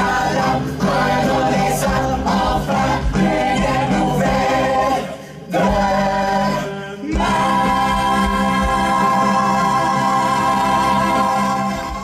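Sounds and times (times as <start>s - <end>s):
mixed chorus singing: 0.0s - 12.0s.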